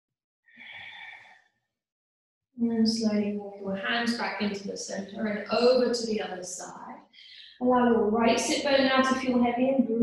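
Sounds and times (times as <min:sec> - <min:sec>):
woman exhaling: 0:00.6 - 0:01.2.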